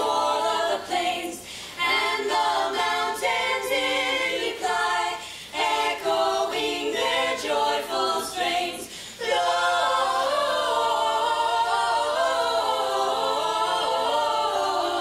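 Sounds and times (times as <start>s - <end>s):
voices singing a cappella: 0.0s - 15.0s.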